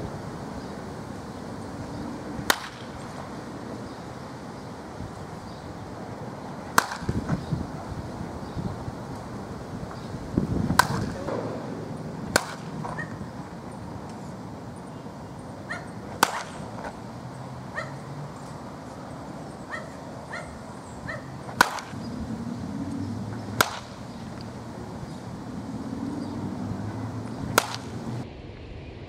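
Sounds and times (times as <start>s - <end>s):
baseball bat hitting balls: 1.8s - 4.5s, 6.5s - 7.5s, 9.0s - 28.2s.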